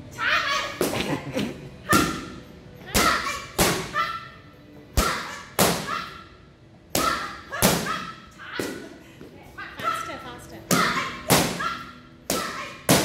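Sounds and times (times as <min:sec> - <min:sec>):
sharp slaps on a strike pad: 0:12.3 - 0:13.0.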